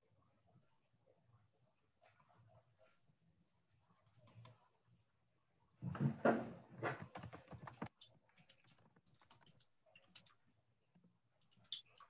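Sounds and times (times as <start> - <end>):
keyboard typing: 6.8 - 10.4.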